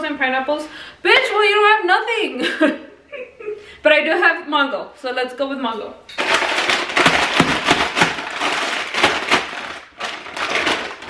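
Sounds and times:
plastic bag crinkling: 6.1s - 11.0s.

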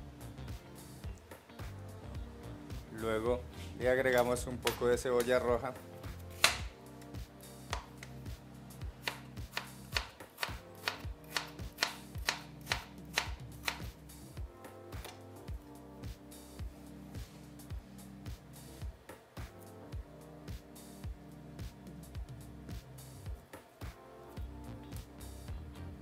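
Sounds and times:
knife slicing onion on cutting board: 6.1s - 6.7s, 9.0s - 13.9s.

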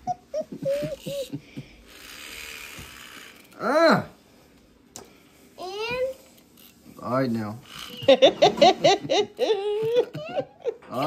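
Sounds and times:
high-pitched giggles: 0.0s - 1.6s, 7.8s - 11.0s.

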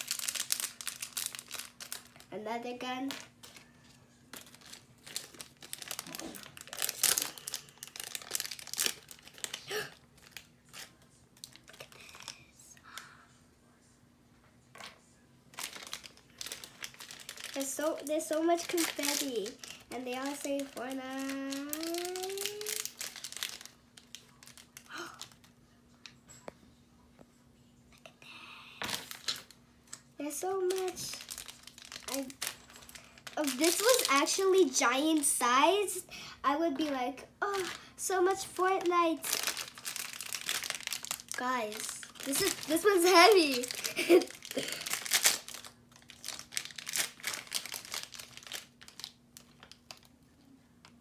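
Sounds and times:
paper wrapper crinkling: 0.0s - 2.4s, 3.1s - 12.4s, 15.5s - 25.5s, 30.4s - 35.8s, 36.8s - 50.2s.

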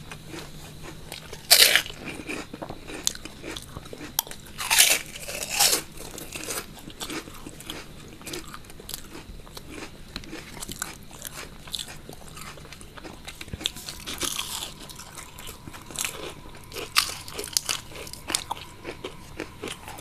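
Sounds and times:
crunching and chewing crisp snacks: 0.0s - 20.0s.

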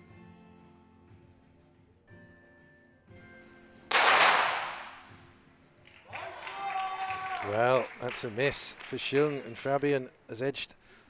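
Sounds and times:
faint background music: 0.0s - 11.0s
pistol shot echoing: 3.9s - 5.2s.

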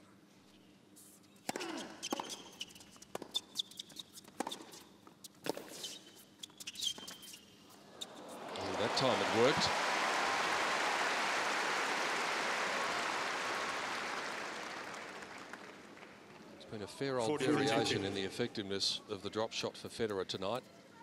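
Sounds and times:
shoe squeaks: 1.0s - 8.3s
crowd cheering and applause: 8.1s - 16.2s.

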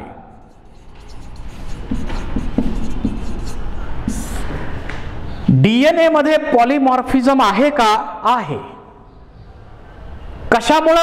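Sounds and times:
marker pen writing on whiteboard: 0.3s - 5.2s.

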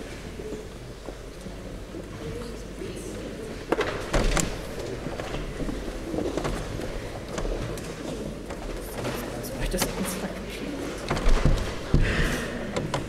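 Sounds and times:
low murmured talk: 0.0s - 13.0s
footsteps and shuffling: 3.5s - 13.0s
sharp knocks and clicks: 11.0s - 13.0s.

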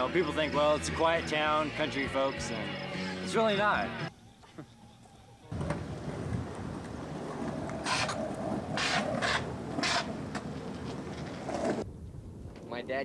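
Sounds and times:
wind on microphone: 5.5s - 10.2s, 11.4s - 13.0s.

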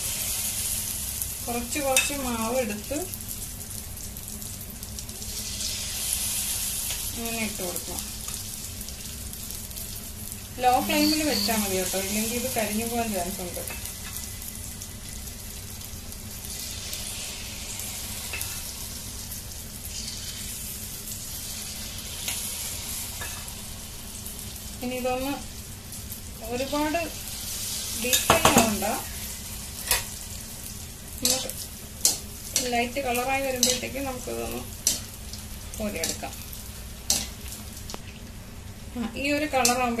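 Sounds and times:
dough sizzling in hot oil: 0.0s - 40.0s.

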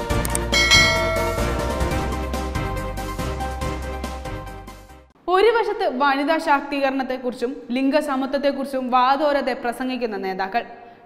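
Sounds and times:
background music: 0.0s - 5.1s
short clicks: 0.1s - 0.6s
bright bell chime: 0.6s - 2.2s.

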